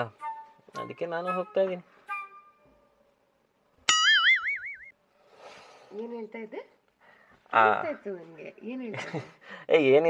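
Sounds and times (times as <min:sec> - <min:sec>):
cartoon boing sound effect: 0:03.9 - 0:04.9.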